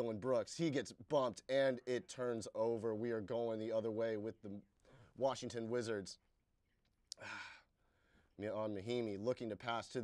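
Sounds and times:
man sighing: 0:07.1 - 0:08.1.

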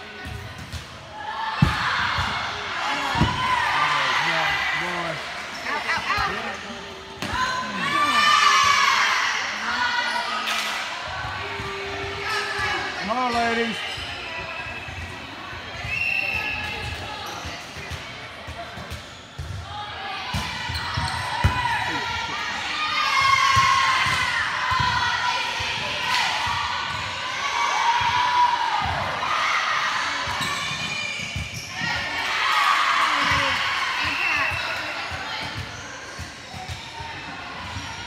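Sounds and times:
players shouting: 0:07.2 - 0:10.2
sneakers squeaking on court: 0:20.7 - 0:21.7, 0:30.4 - 0:32.0, 0:34.1 - 0:37.9.

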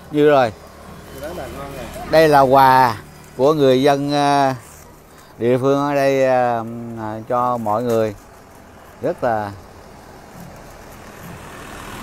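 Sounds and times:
truck driving past: 0:00.0 - 0:06.2, 0:08.4 - 0:12.0.

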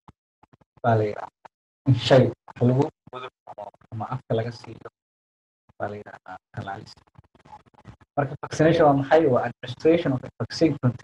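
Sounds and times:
man speaking softly: 0:00.9 - 0:01.3, 0:01.9 - 0:04.9, 0:05.8 - 0:07.0, 0:08.2 - 0:11.0.

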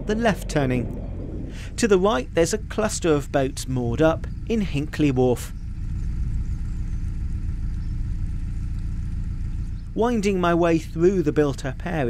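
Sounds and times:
boat engine low rumble: 0:00.0 - 0:12.0.

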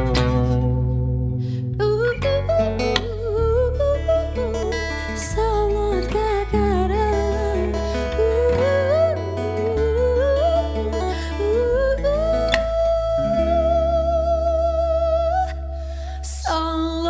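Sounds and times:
acoustic guitar: 0:00.0 - 0:17.0
electric bass guitar: 0:00.0 - 0:17.0
woman singing: 0:00.0 - 0:17.0.

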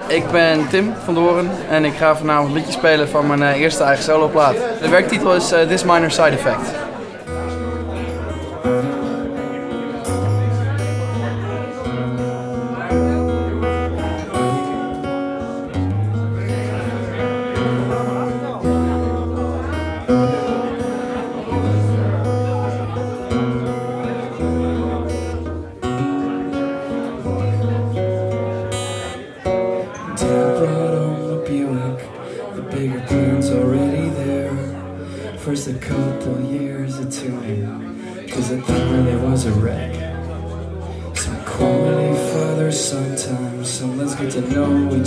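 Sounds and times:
acoustic guitar chords: 0:00.0 - 0:45.0.

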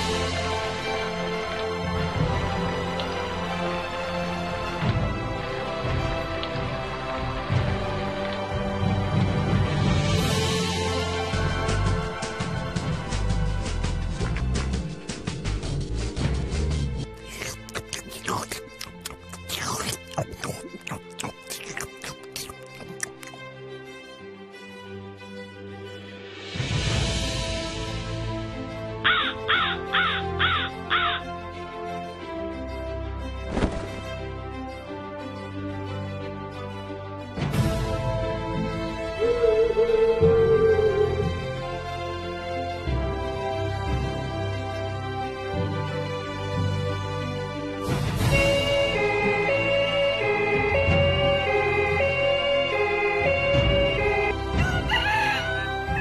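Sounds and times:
background music: 0:00.0 - 0:56.0
crow cawing: 0:29.0 - 0:31.4, 0:54.6 - 0:56.0.

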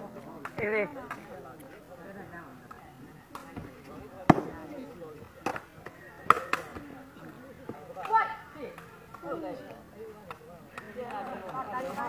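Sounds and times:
players' voices: 0:00.0 - 0:12.0.

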